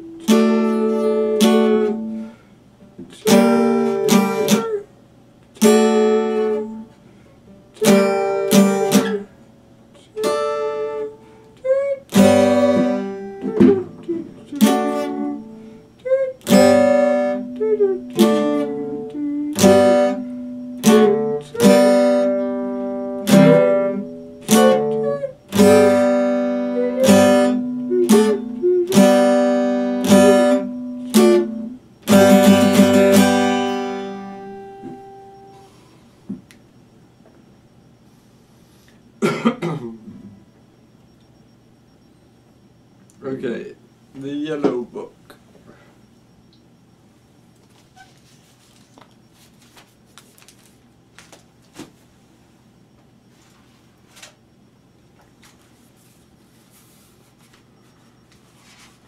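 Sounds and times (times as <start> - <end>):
acoustic guitar chords: 0.0 - 4.9, 5.6 - 37.7.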